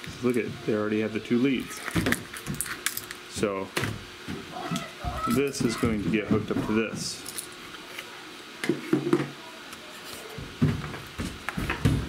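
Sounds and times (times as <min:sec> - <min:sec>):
objects knocking on wooden workbench: 0:08.6 - 0:09.3, 0:10.4 - 0:12.0.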